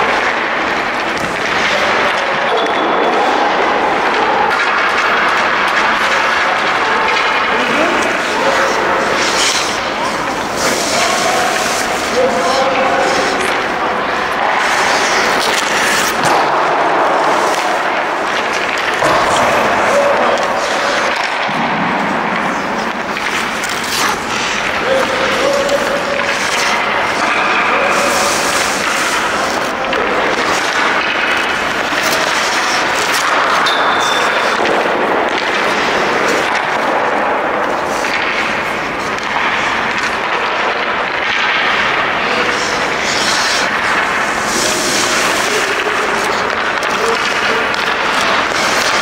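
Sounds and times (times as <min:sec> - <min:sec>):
hockey sticks and pucks knocking: 0:00.0 - 0:49.0
skate blades scraping ice: 0:00.0 - 0:49.0.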